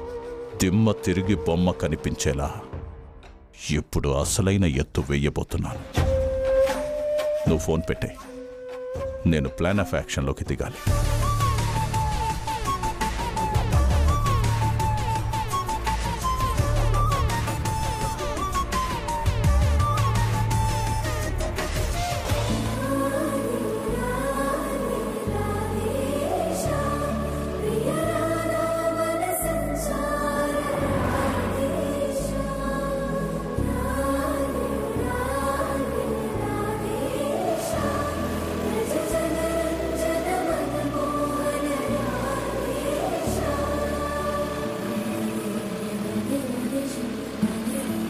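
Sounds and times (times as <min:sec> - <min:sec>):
choir singing long held notes: 0:22.5 - 0:48.0.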